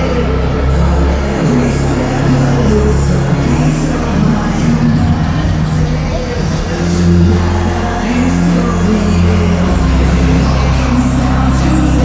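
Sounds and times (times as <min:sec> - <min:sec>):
loud hardstyle dance music: 0:00.0 - 0:12.0.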